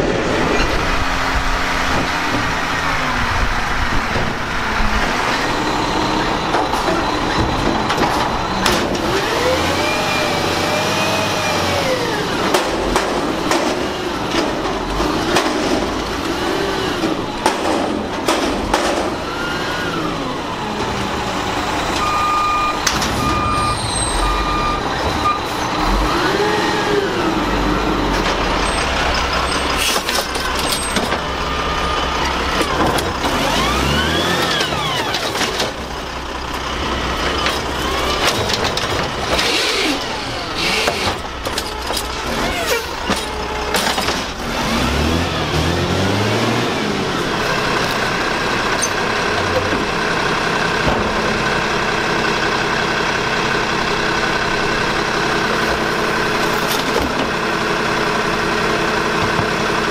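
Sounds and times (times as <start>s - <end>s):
garbage truck engine revving: 0.0s - 59.9s
knocks and bangs: 17.0s - 19.3s
reversing beeper: 21.2s - 29.7s.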